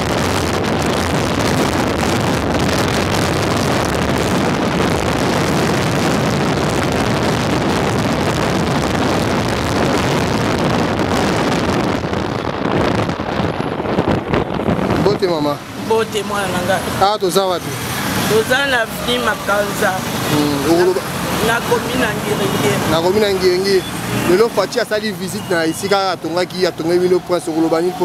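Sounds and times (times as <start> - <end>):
wind buffeting microphone: 0.0 - 24.9
road noise: 0.0 - 28.0.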